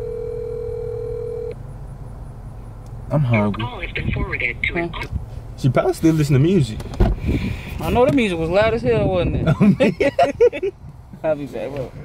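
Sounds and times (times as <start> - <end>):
telephone ringback tone: 0.0 - 1.6.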